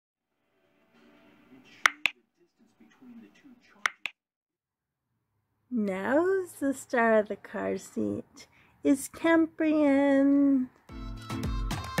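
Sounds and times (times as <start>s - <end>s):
mouse clicks: 1.9s - 2.1s, 3.9s - 4.1s.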